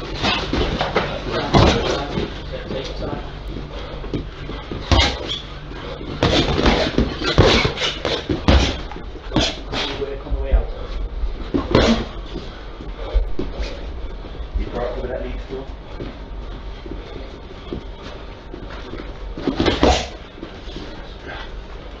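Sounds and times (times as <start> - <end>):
boxing gloves punching thuds: 4.6 - 5.4, 6.0 - 10.0, 19.4 - 20.2.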